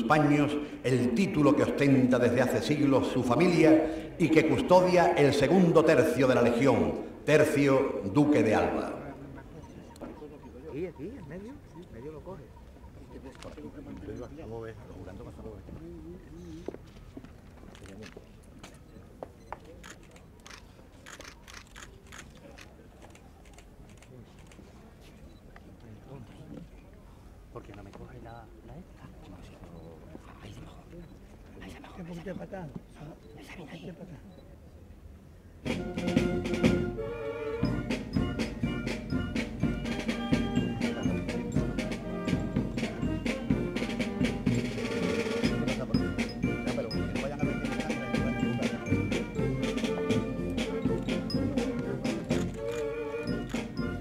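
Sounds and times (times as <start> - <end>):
low crowd rumble: 34.4 - 54.0
military band playing march: 35.6 - 54.0.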